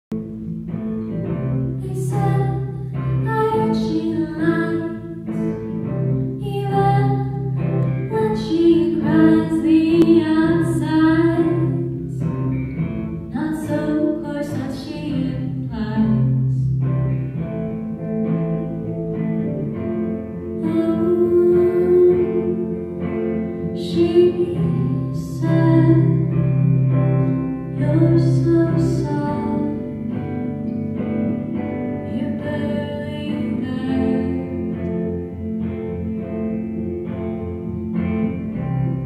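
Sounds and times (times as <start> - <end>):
bass: 0.0 - 39.0
electric guitar: 0.0 - 39.0
woman singing: 1.7 - 5.4, 6.2 - 12.2, 13.3 - 16.6, 20.6 - 23.1, 23.8 - 26.6, 27.7 - 30.3, 31.9 - 35.2.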